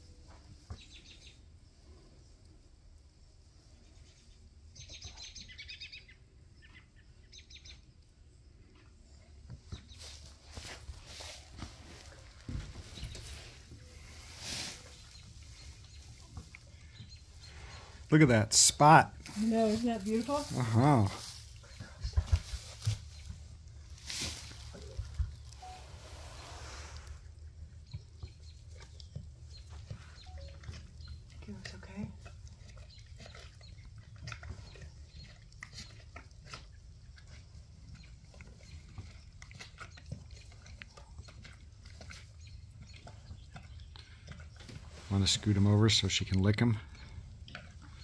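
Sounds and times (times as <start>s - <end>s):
soft horse noises: 0.0s - 48.0s
rustling in straw: 9.9s - 16.7s, 19.2s - 27.4s.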